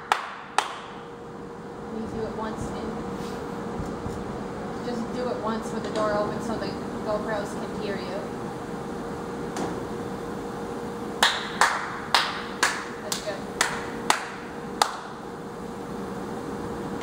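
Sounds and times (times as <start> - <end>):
sharp claps ringing in room: 0.0 - 1.0, 11.2 - 15.2
steady low hum: 0.0 - 17.0.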